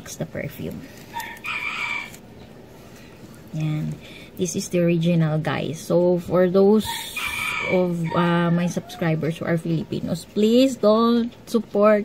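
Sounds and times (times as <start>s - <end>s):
rooster crowing: 1.1s - 2.2s, 6.9s - 9.3s.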